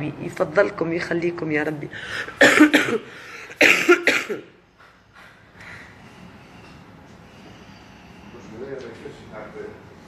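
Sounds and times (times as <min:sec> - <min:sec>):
woman coughing: 0:02.3 - 0:04.6.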